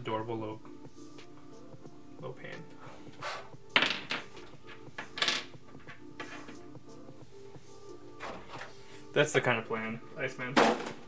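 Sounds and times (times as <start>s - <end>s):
background music: 0.0s - 11.0s
objects rustling on tabletop: 3.0s - 6.7s.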